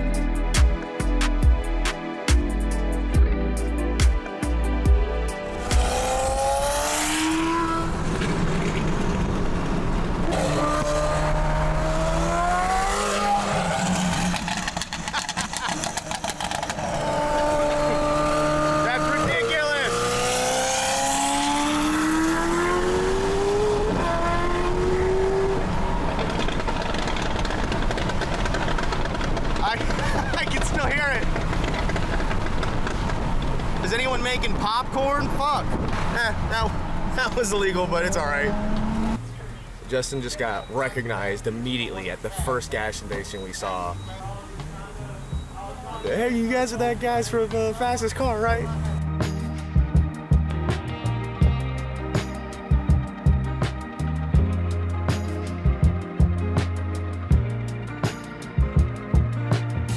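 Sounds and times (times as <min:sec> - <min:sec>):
road and tyre noise: 0:00.0 - 0:59.9
car engine accelerating: 0:05.2 - 0:41.0.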